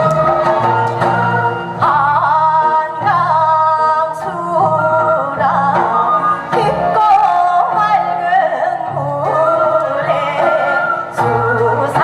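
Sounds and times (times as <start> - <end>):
instrumental backing: 0.0 - 12.0
woman singing into a microphone: 1.1 - 12.0.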